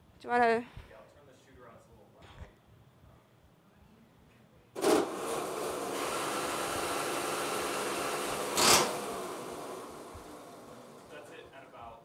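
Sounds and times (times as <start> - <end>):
robot electric motors whirring: 4.8 - 10.3.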